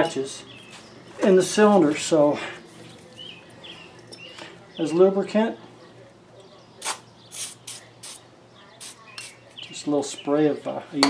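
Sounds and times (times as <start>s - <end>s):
aerosol can spraying: 6.8s - 8.2s, 8.8s - 9.4s.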